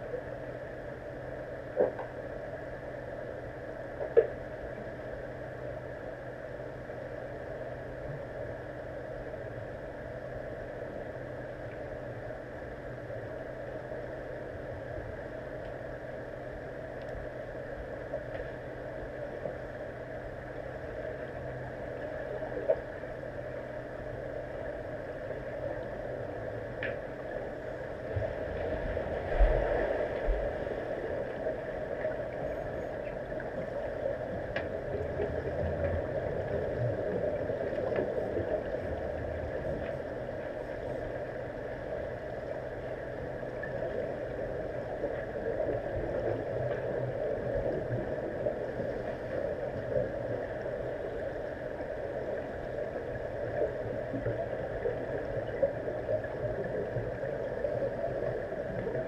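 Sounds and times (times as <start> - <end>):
underwater drone: 0.0 - 59.0.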